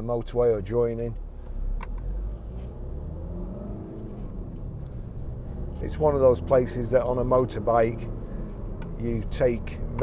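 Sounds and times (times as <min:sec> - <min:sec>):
diesel engine rumble inside car: 0:00.0 - 0:10.0.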